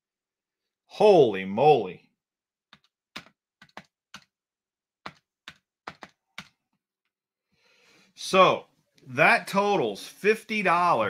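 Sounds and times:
computer keyboard keys clicking: 0:02.7 - 0:04.3, 0:05.0 - 0:06.6.

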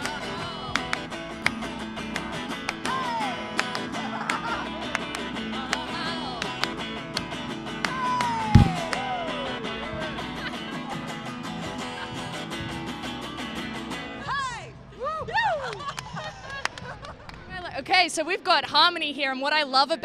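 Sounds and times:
hand claps: 0:00.8 - 0:09.1
electric guitar strumming: 0:08.4 - 0:10.0
loud bump: 0:08.6 - 0:09.0.

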